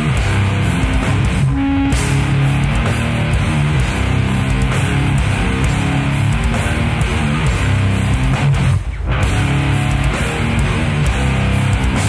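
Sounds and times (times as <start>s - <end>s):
bass and drums: 0.0s - 12.0s
distorted electric guitar riffing: 0.0s - 12.0s.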